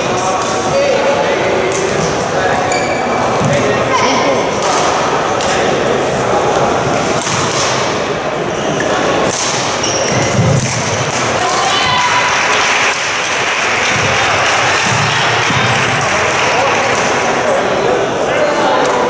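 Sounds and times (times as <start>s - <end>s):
reverberant voices: 0.0s - 19.0s
rackets hitting shuttlecock: 1.7s - 2.2s, 7.0s - 8.1s, 9.1s - 11.4s
shoes squeaking on court floor: 2.5s - 3.8s, 9.6s - 10.9s.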